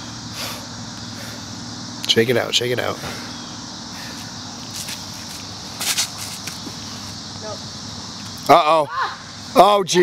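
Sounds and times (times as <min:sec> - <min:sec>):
outdoor background noise: 0:00.0 - 0:10.0
footsteps scuffing on concrete: 0:04.1 - 0:07.2.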